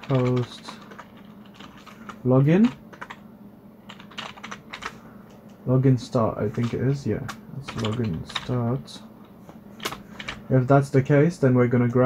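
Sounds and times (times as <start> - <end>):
computer keyboard typing: 0.0 - 3.2, 3.9 - 5.0, 6.4 - 8.8, 9.8 - 10.4.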